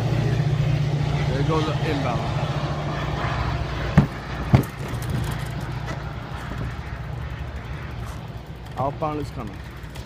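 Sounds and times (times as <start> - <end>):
distant diesel locomotive rumble: 0.0 - 10.0
sharp thumps: 3.9 - 6.0.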